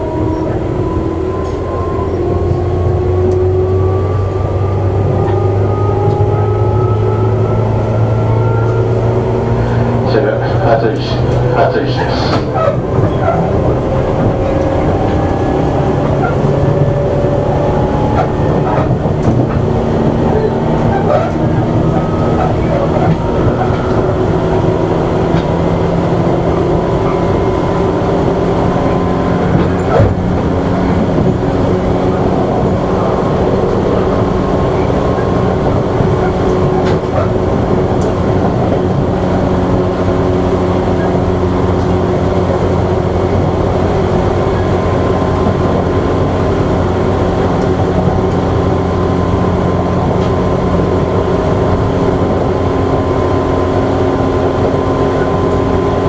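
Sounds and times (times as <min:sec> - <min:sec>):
electric train rumble: 0:00.0 - 0:56.0.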